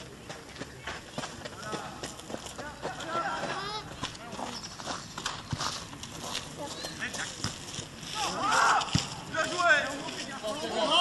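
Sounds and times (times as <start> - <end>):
distant players shouting: 8.1 - 11.0.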